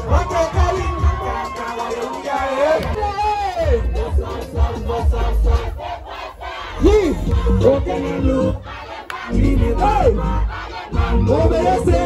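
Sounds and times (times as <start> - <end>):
crowd shouting along: 0.0 - 12.0
live music with heavy bass beat: 0.0 - 12.0.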